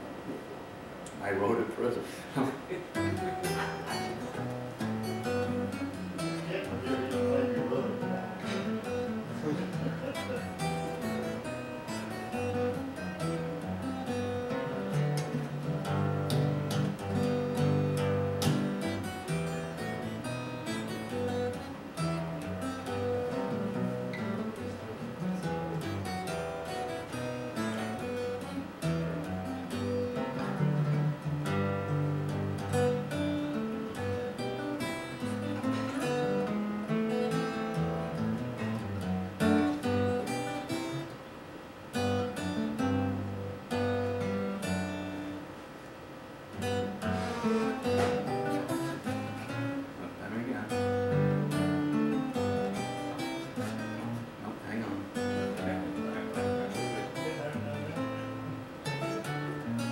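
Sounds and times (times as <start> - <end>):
solo acoustic guitar: 2.3 - 59.9.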